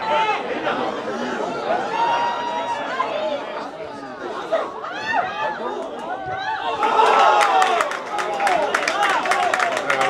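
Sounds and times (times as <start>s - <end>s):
people shouting and calling: 0.0s - 10.0s.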